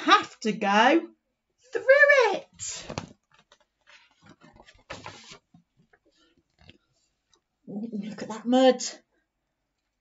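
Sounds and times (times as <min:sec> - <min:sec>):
book pages rustling: 0:02.7 - 0:07.5
page turning swish: 0:02.8 - 0:05.6.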